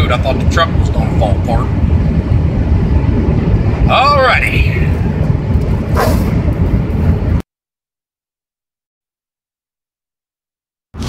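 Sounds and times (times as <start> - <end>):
truck cab road rumble: 0.0 - 7.4.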